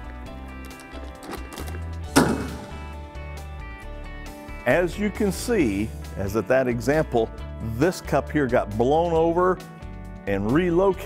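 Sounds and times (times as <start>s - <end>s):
background music: 0.0s - 11.0s
air cannon thump: 2.1s - 3.1s.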